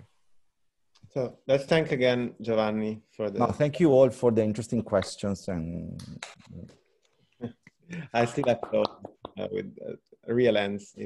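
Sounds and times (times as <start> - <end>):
voices over video call: 0.0 - 11.0.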